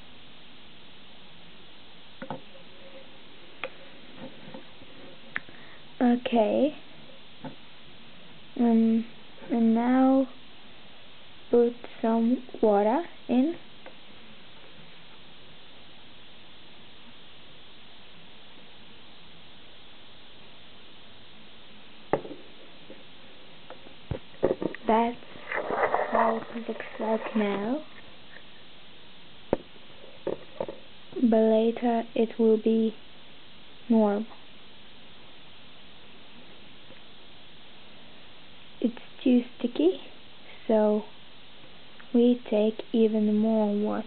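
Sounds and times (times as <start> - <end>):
steady background hiss: 0.0 - 44.0.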